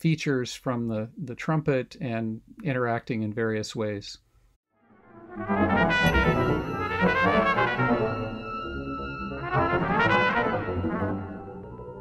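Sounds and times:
computer-generated music: 0:04.7 - 0:12.0
high sustained tones: 0:04.8 - 0:12.0
trumpet improvising: 0:05.3 - 0:11.6.

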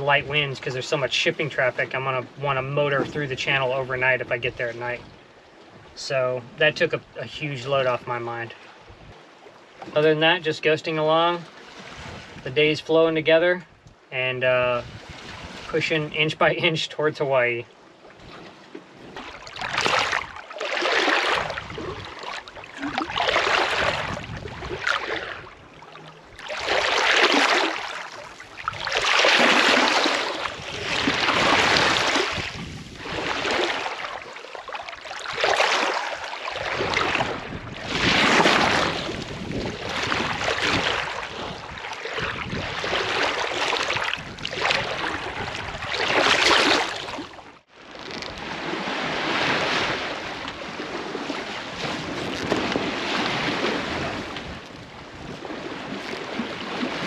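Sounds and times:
seawater sloshing against hull: 0:00.0 - 0:14.1, 0:14.8 - 0:57.0.

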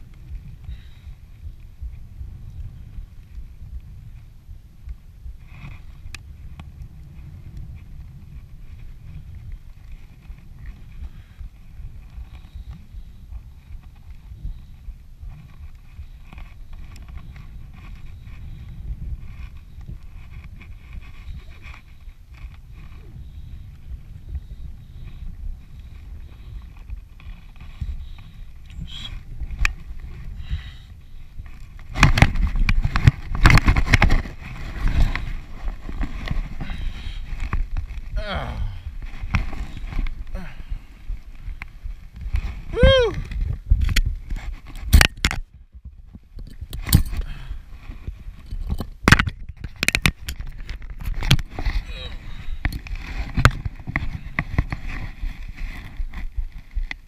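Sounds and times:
wind buffeting camera: 0:00.0 - 0:57.0
gear rustling and knocking: 0:31.3 - 0:38.2.

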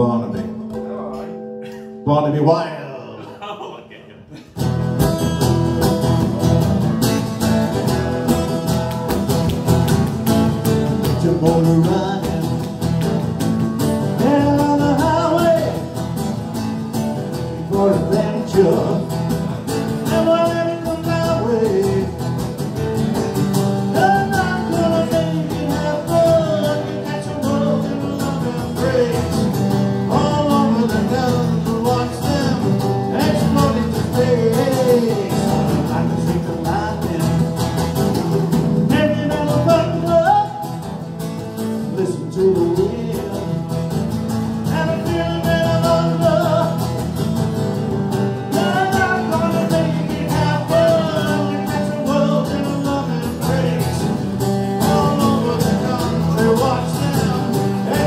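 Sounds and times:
electric guitar strumming chords: 0:00.0 - 0:58.0
man singing into a microphone: 0:11.0 - 0:12.9, 0:14.1 - 0:15.9, 0:17.4 - 0:22.4, 0:23.8 - 0:41.0, 0:41.8 - 0:47.1, 0:48.3 - 0:58.0.

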